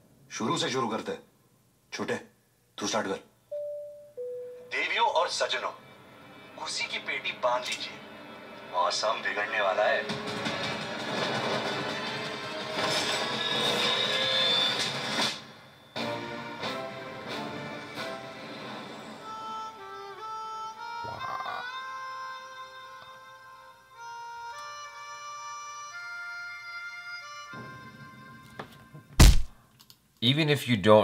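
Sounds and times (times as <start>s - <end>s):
high held tone: 3.5s - 5.0s
trailer music: 9.8s - 13.4s
deep impact boom: 29.2s - 29.5s
sharp hits: 29.2s - 29.6s.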